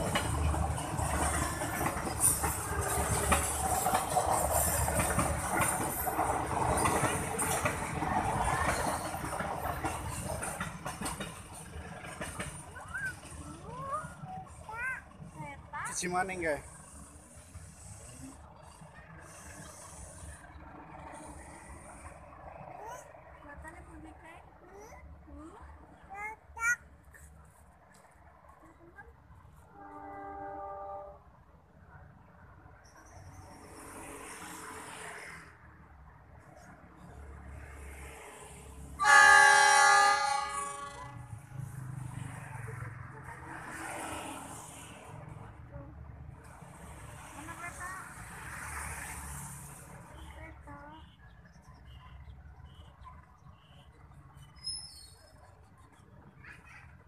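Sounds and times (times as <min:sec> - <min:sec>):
distant train rumble: 0:00.0 - 0:57.0
train horn blast: 0:29.7 - 0:31.3, 0:39.0 - 0:41.3.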